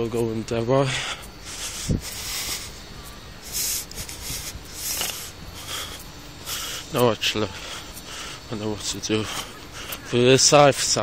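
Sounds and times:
phone microphone rubbing noise: 0:03.4 - 0:06.0.

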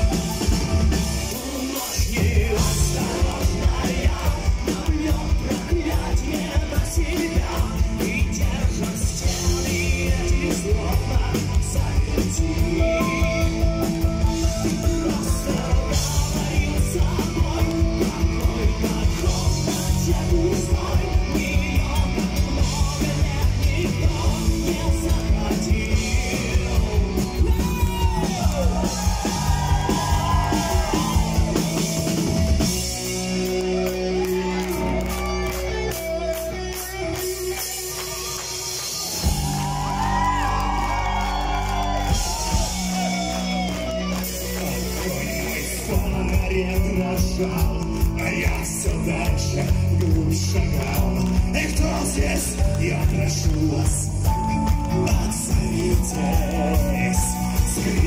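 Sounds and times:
live rock band playing: 0:00.0 - 0:58.0
singer singing into microphone: 0:01.2 - 0:13.8, 0:14.5 - 0:31.6, 0:44.8 - 0:58.0.

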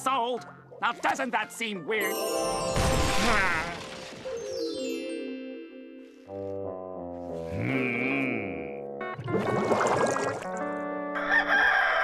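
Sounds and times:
cartoon bubbling whoosh: 0:09.2 - 0:10.5
rooster crow: 0:11.1 - 0:12.0.

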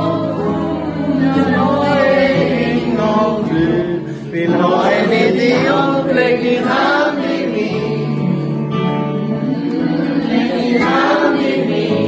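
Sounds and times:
acoustic guitar: 0:00.0 - 0:12.0
men singing together: 0:00.0 - 0:12.0.

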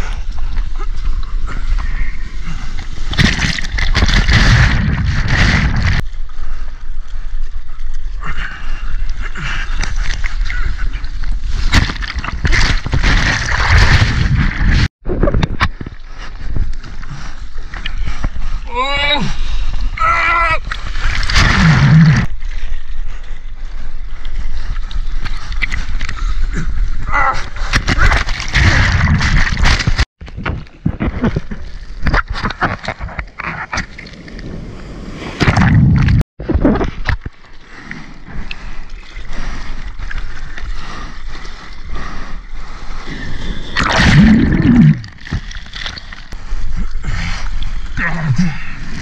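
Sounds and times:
water sloshing and splashing: 0:00.3 - 0:06.2, 0:09.5 - 0:18.6, 0:20.6 - 0:34.7, 0:35.4 - 0:48.0
water splashing around surfboard: 0:02.8 - 0:06.1, 0:11.4 - 0:14.9, 0:27.6 - 0:34.6, 0:43.4 - 0:46.4
breaking wave churning: 0:03.2 - 0:06.0, 0:43.6 - 0:45.4.

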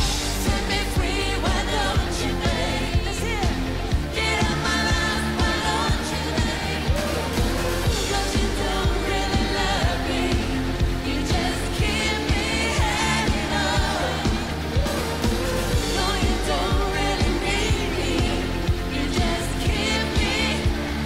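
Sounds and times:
pop-rock band playing: 0:00.0 - 0:21.0
drum beat: 0:03.4 - 0:18.4.

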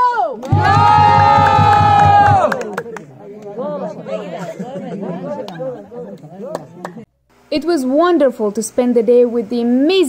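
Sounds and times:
low rhythmic thumping: 0:00.5 - 0:02.7.

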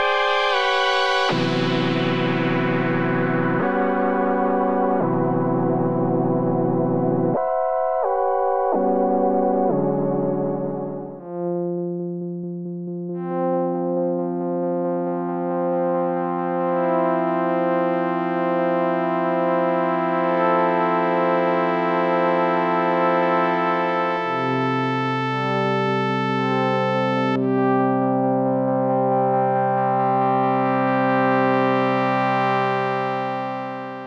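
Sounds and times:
synthesizer playing sustained chords: 0:00.0 - 0:34.0.

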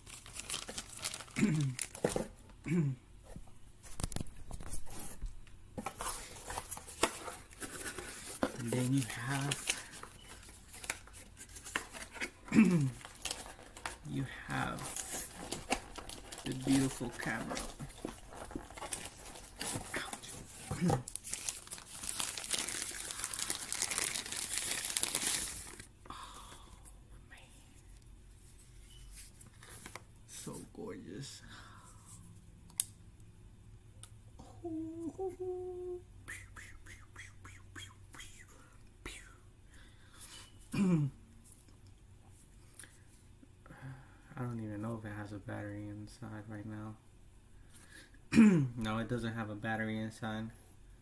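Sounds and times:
wrapping crinkling and rustling: 0:00.0 - 0:02.3, 0:05.9 - 0:25.9.

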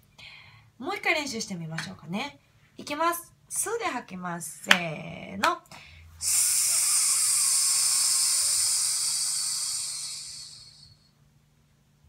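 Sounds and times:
woman exhaling with hiss: 0:06.2 - 0:11.1.

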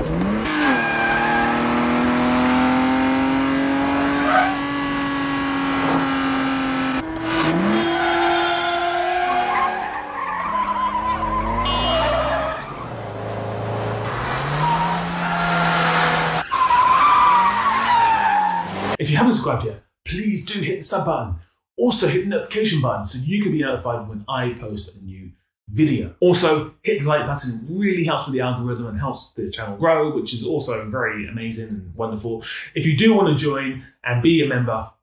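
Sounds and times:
car engines revving hard: 0:00.0 - 0:19.0
tyre squeal: 0:00.4 - 0:01.9, 0:04.1 - 0:04.8, 0:07.2 - 0:13.0.

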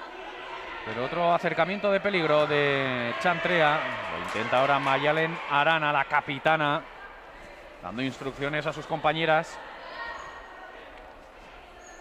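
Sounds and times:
steady hum of indoor hall: 0:00.0 - 0:12.0.

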